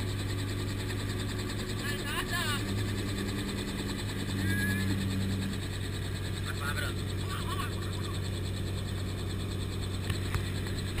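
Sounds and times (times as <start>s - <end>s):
helicopter engine and rotor hum: 0.0s - 11.0s.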